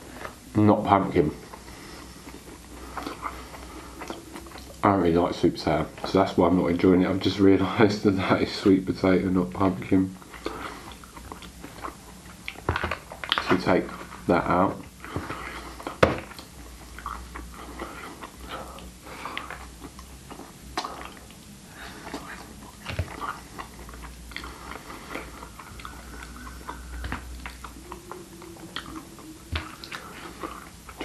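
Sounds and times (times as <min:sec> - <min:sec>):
close chewing: 0:01.2 - 0:06.2, 0:09.6 - 0:14.2, 0:14.8 - 0:31.0.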